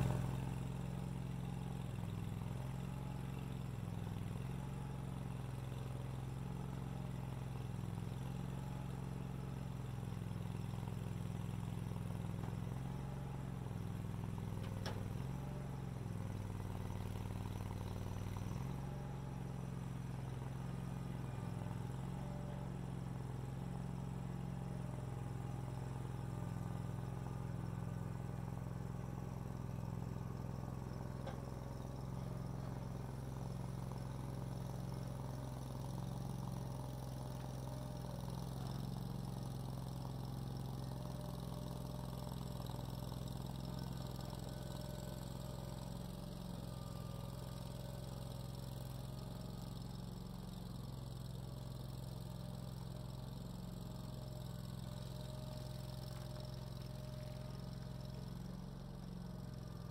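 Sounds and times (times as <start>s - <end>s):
skid steer engine running: 0.0s - 59.9s.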